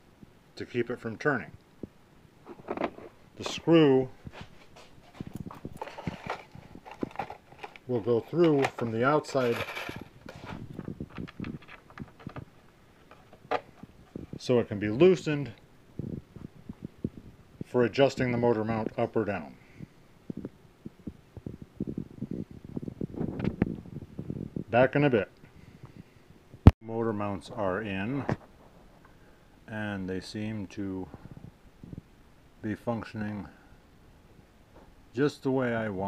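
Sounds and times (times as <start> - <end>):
handling clicks and knocks: 5.1 - 13.9.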